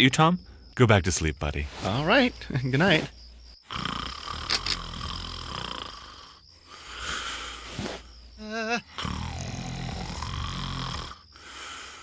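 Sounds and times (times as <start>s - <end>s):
man snoring: 3.6s - 12.0s.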